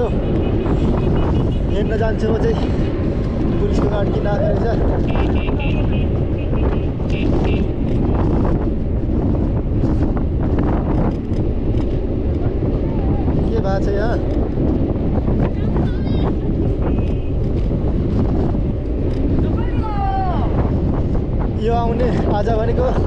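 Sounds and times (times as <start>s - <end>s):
wind buffeting microphone: 0.0s - 23.0s
voices: 15.4s - 16.5s, 19.4s - 20.6s.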